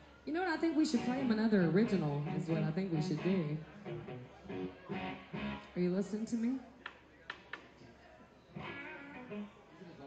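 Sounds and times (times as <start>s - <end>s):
guitar notes picked softly: 8.5s - 9.6s.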